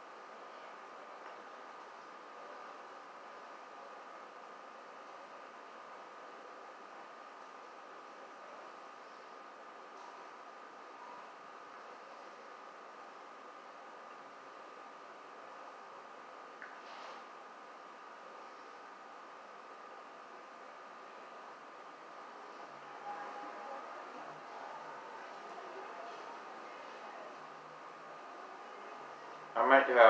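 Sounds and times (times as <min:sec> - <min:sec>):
faint steady hiss: 0:00.0 - 0:30.0
thin high whine: 0:00.0 - 0:30.0.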